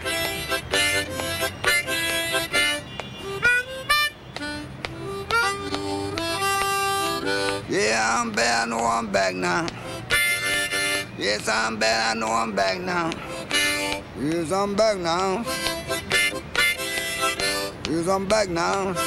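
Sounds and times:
solo harmonica: 0.0 - 19.0.

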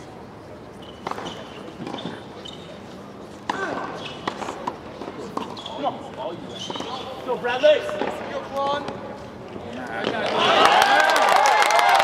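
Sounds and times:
high squeaks: 0.8 - 3.0, 5.3 - 7.8.

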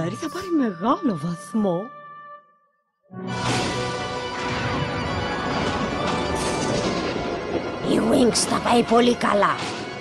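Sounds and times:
dramatic orchestral score: 3.1 - 10.0
thunder rumbling and crashing: 3.4 - 10.0.

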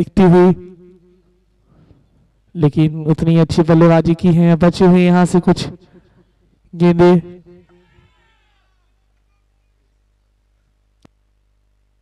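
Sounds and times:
male commentator speaking: 0.0 - 0.6, 2.6 - 5.8, 6.7 - 7.4.

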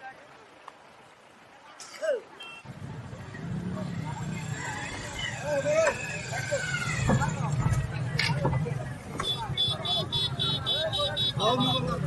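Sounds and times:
voices calling: 1.8 - 12.0.

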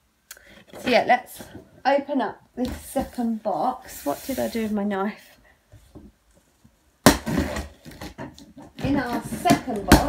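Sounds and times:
cardboard scraping and rustling: 2.7 - 4.8.

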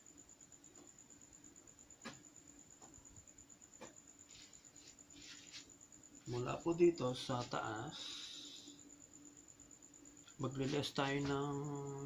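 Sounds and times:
faint low hum: 0.0 - 12.0
soft hiss: 0.0 - 12.0.

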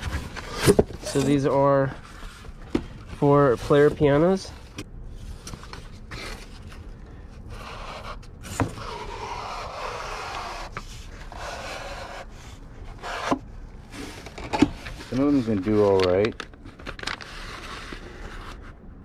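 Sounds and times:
cardboard boxes scraping: 0.0 - 2.6, 3.2 - 4.7, 7.5 - 16.3.

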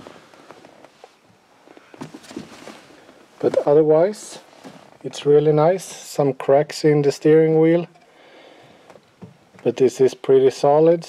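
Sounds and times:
light knocks and rustles: 0.0 - 3.8.

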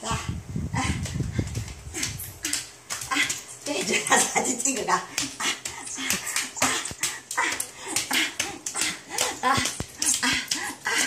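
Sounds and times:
palms slapping tiled floor: 0.8 - 11.0
woman's voice: 3.2 - 5.3.

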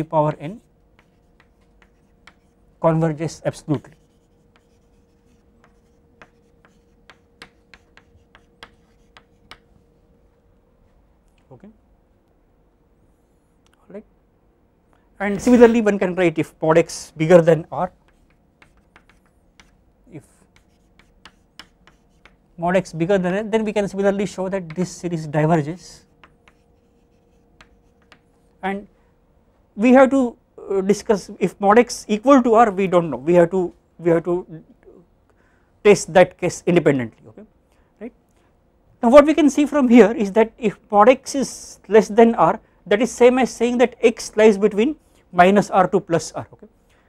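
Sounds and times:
faint steady hum: 0.0 - 47.0
chalk tapping and scratching: 0.5 - 2.6, 3.6 - 9.9, 17.8 - 22.6, 24.2 - 25.1, 26.0 - 28.5.

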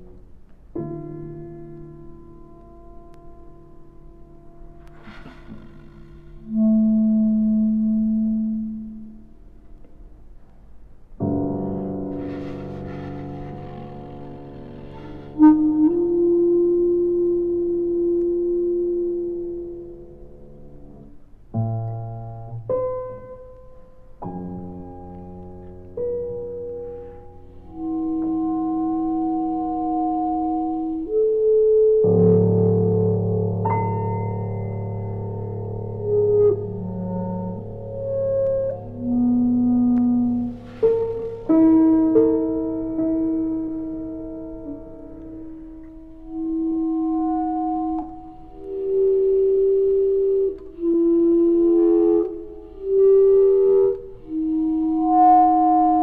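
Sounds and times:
piano notes ringing: 0.0 - 10.3, 11.0 - 56.0
clarinet holding long notes: 4.9 - 9.2, 12.2 - 20.1, 26.4 - 56.0.

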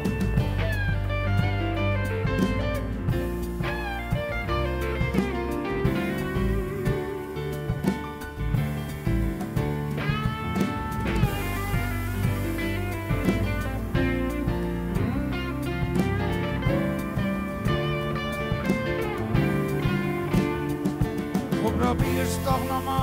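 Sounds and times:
bass: 0.0 - 23.0
electric guitar lead: 0.0 - 23.0
electric piano: 0.0 - 23.0.

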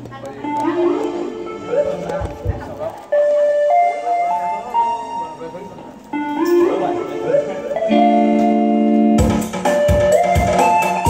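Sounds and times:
electronic keyboard slow melody: 0.4 - 11.0.

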